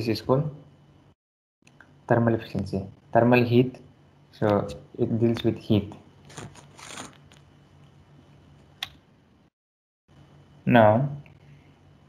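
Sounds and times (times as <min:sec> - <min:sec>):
faint room hum: 0:00.0 - 0:09.5, 0:10.1 - 0:12.0.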